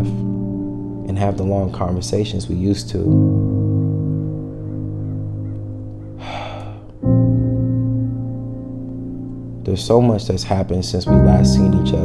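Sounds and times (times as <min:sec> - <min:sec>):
sustained music chord: 0:00.0 - 0:06.3, 0:07.0 - 0:10.2, 0:11.1 - 0:12.0
sharp breath gasp: 0:06.2 - 0:06.9.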